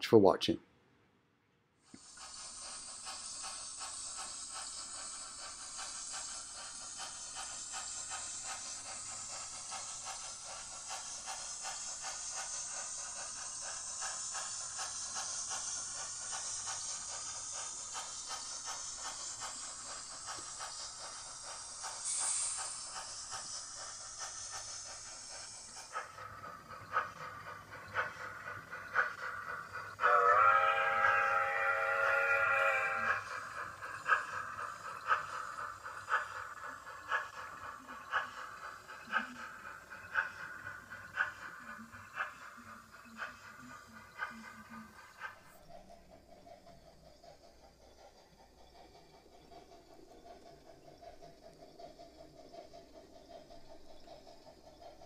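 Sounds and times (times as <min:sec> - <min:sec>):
steam hissing: 0:01.8 - 0:55.0
fast ticks: 0:01.9 - 0:30.0, 0:32.9 - 0:55.0.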